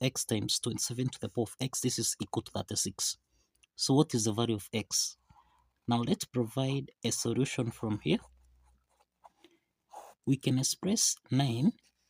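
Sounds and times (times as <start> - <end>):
pen scratching on paper: 7.8 - 10.3.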